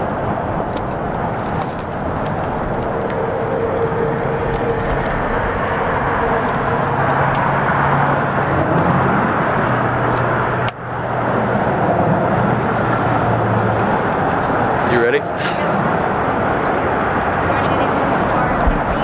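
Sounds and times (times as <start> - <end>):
low engine hum: 0.0 - 19.0
outdoor traffic noise: 0.0 - 19.0.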